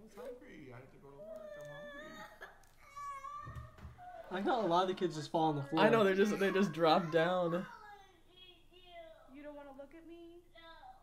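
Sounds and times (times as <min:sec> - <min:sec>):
girl crying: 0:01.2 - 0:04.3, 0:05.8 - 0:08.7.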